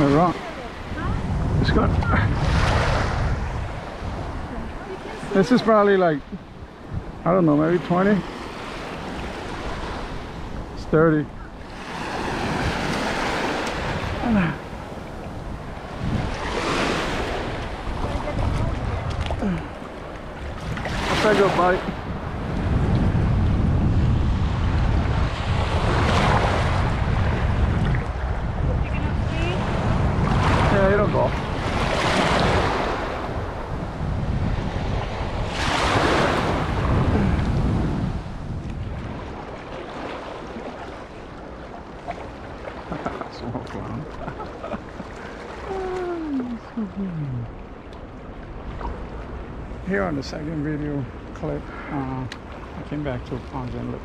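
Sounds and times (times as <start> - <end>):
small waves washing on shore: 0.0 - 54.0
wind buffeting microphone: 0.0 - 54.0.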